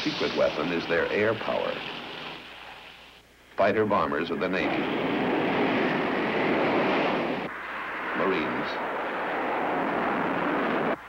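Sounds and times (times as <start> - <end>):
jet engine rushing: 3.7 - 11.0.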